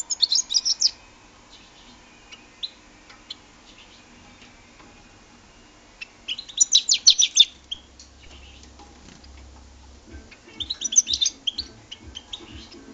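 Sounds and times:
goldfinch twittering chirps: 0.0 - 12.9.

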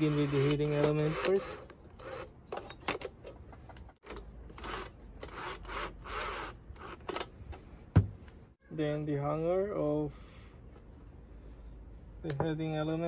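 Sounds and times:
screwdriver ratcheting into metal: 0.0 - 3.0.

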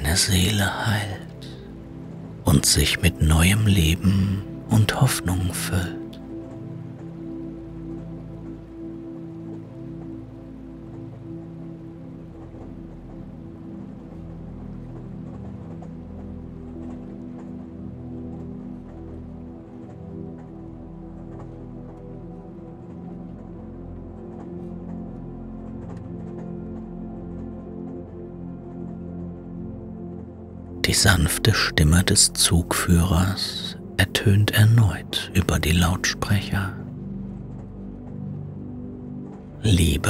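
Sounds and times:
calm ambient music: 0.0 - 40.0
light patter: 0.0 - 40.0.

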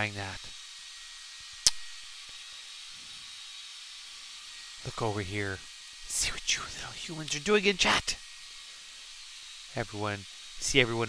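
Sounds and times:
hair dryer blowing: 0.0 - 11.0
sharp click: 1.6 - 1.9.

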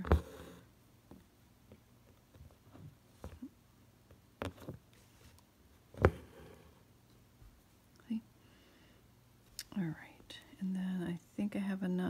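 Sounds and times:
faint handling noise: 0.0 - 8.0.

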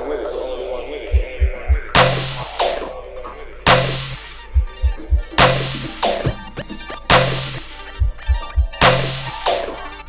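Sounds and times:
electronic dub music: 1.0 - 10.0
low thumps: 1.1 - 2.9, 3.7 - 9.3.

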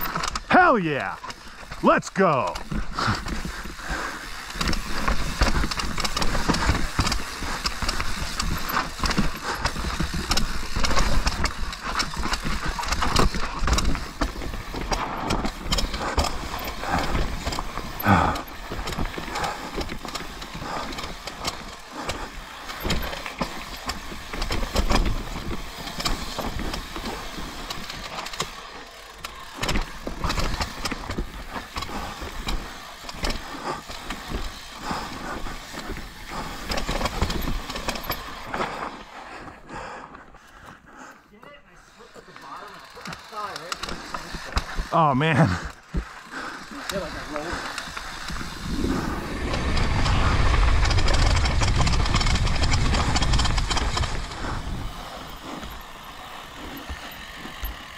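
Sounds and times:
bike knocking and rattling: 0.0 - 0.5, 1.1 - 1.8, 2.5 - 40.9, 42.0 - 57.9
bike tyres rolling over rocks: 0.0 - 0.5, 1.2 - 1.8, 2.5 - 39.9, 42.2 - 57.9.

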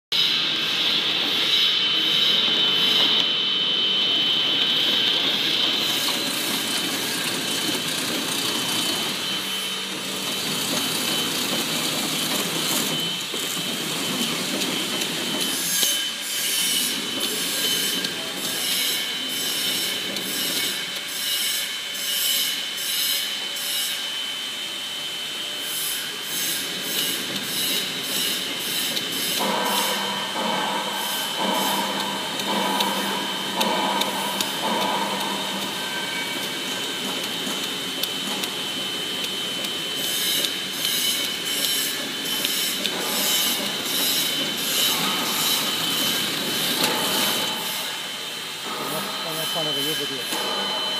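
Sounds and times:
machine whir with high whine: 0.1 - 50.9.

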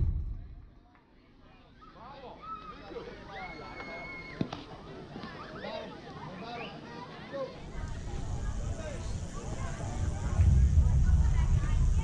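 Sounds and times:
low rumble: 0.0 - 0.9, 9.7 - 12.0.

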